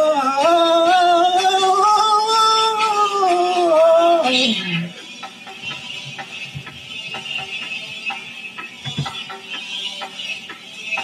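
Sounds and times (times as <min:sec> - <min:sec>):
instrumental backing music: 0:00.0 - 0:11.0
light percussion hits: 0:05.4 - 0:11.0.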